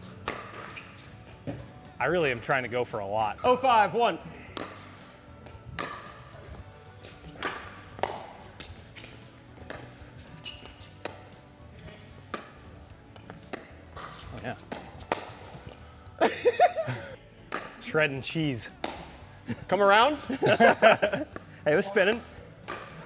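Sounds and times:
paddles hitting plastic ball: 0.2 - 0.7, 4.4 - 11.4, 12.2 - 15.8, 17.5 - 17.9, 18.7 - 19.2, 22.1 - 23.0
ball bouncing on court: 0.2 - 1.7, 4.4 - 15.8, 17.5 - 17.8, 18.7 - 19.2, 22.1 - 23.0.

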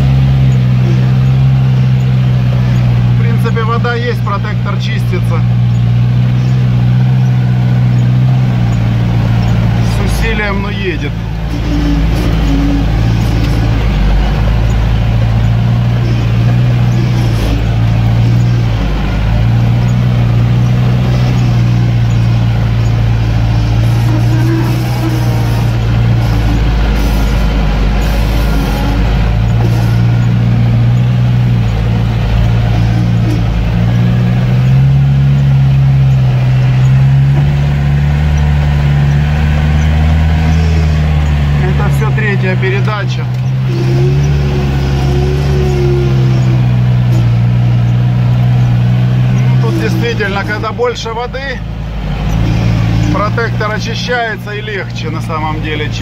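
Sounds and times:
engine running under load: 0.0 - 56.0.

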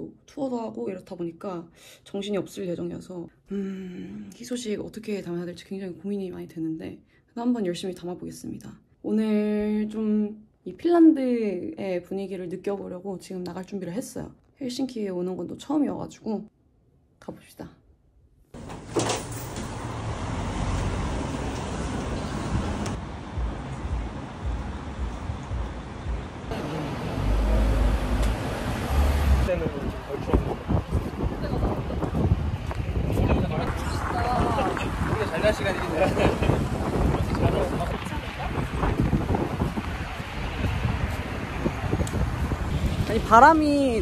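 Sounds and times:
car passing close: 18.6 - 43.5
city street traffic: 18.6 - 44.0
wind rumbling on microphone: 20.6 - 26.5, 28.1 - 44.0.

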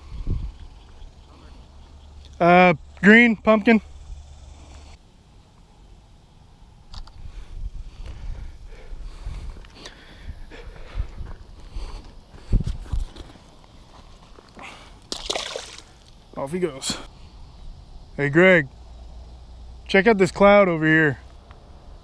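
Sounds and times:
fish splashing into water: 15.1 - 16.0
water sloshing and splashing: 15.1 - 16.0.

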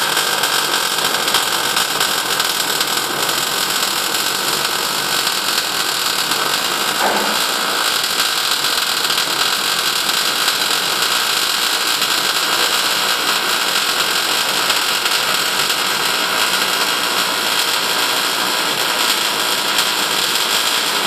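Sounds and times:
welding arc crackling and hissing: 0.0 - 21.0.

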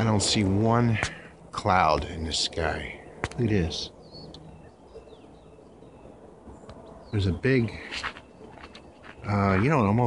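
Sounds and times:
distant bird chirps: 0.0 - 10.0
faint outdoor background noise: 0.0 - 10.0.

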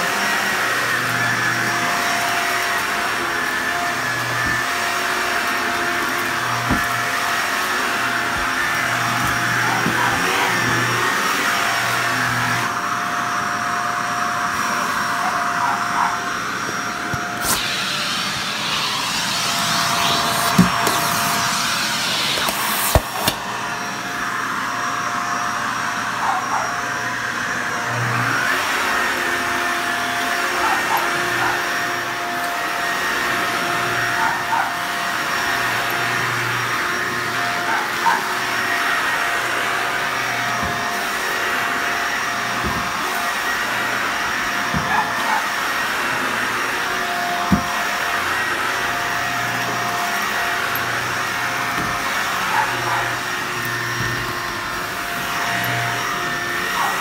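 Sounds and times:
vacuum cleaner running: 0.0 - 57.0.

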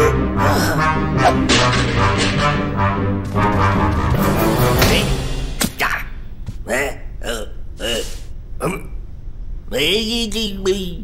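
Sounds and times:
cartoon character grunts and hums: 5.9 - 9.0.

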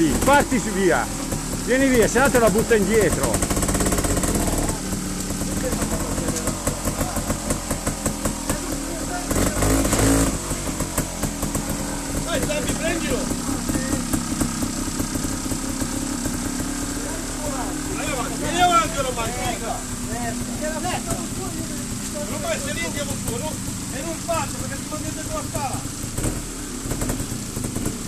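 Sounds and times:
motorcycle engine idling: 0.0 - 28.0.

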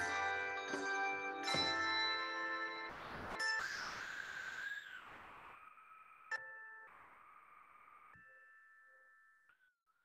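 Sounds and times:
handbell choir chords: 0.0 - 2.9.

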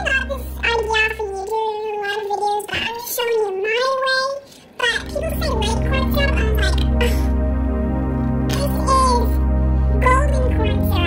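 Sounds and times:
backing music: 0.0 - 1.5, 4.9 - 11.0
high voice singing long notes: 4.8 - 11.0.

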